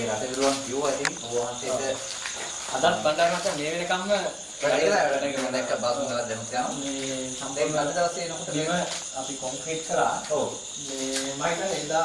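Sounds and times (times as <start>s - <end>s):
crickets chirping: 0.0s - 12.0s
men talking: 0.0s - 12.0s.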